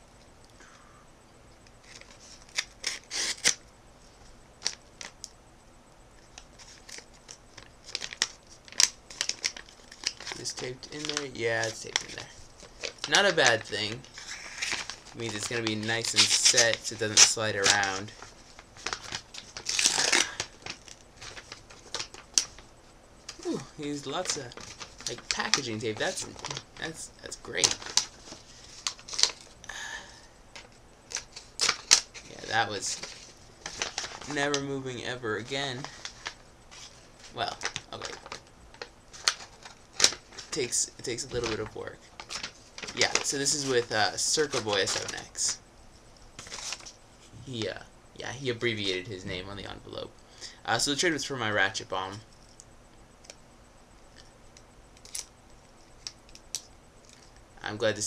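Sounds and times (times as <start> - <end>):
envelope torn open: 1.9 - 3.6, 7.9 - 12.2, 12.8 - 18.0, 18.8 - 22.5, 27.6 - 29.5, 31.1 - 34.4
packaging tape ripping: 1.9 - 3.6, 12.8 - 18.0, 18.8 - 22.6, 31.1 - 32.1.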